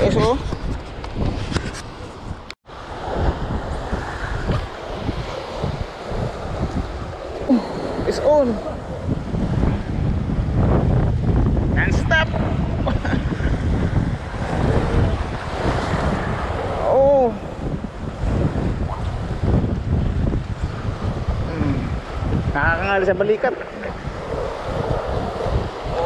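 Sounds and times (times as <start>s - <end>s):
wind buffeting microphone: 0.0s - 26.0s
waves washing against rocks: 2.7s - 11.1s, 13.6s - 26.0s.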